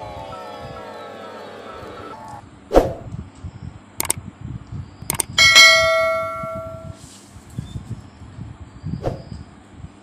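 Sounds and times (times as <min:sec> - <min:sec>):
mouse clicks: 0:05.1 - 0:05.4
notification bell chime: 0:05.4 - 0:07.0.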